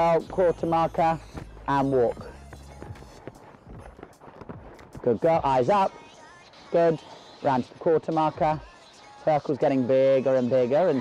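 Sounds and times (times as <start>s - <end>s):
horse hooves on soft arena: 0.0s - 5.9s.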